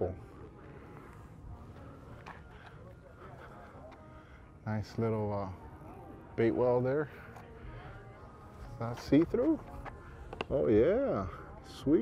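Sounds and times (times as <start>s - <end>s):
people talking nearby: 0.0s - 12.0s.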